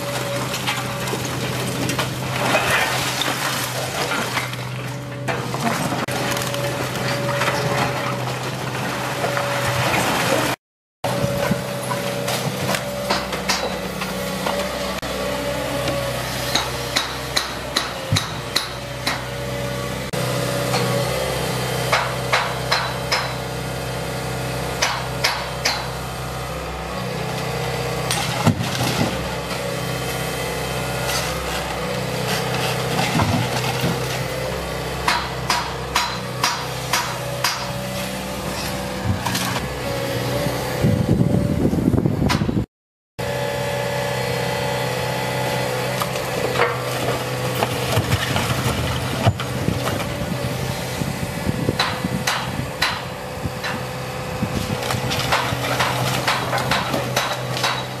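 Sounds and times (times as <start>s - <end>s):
falling rubble clatter: 0.0s - 10.6s, 30.9s - 34.4s, 45.9s - 50.3s, 54.6s - 58.0s
excavator engine running: 0.0s - 42.6s, 43.2s - 58.0s.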